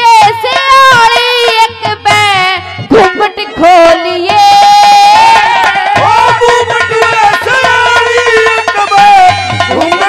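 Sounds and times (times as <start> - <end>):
woman singing through a pa: 0.0 - 5.8
instrumental accompaniment: 0.0 - 10.0.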